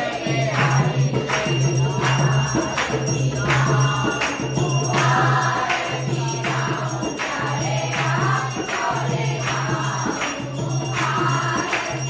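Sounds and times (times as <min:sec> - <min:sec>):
group singing a hymn: 0:00.0 - 0:12.0
jingling percussion beat: 0:00.0 - 0:12.0.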